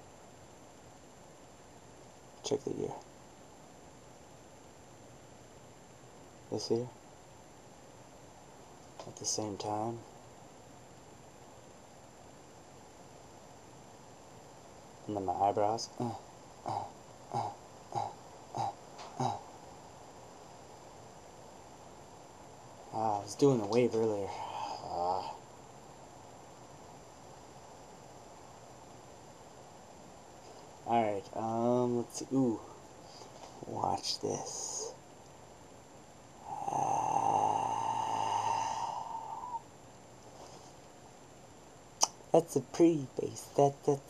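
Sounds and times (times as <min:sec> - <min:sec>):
man's held uhh sound: 0:15.8 - 0:19.6, 0:22.9 - 0:25.4, 0:36.4 - 0:39.7
man grunting: 0:15.9 - 0:19.5, 0:24.3 - 0:25.4.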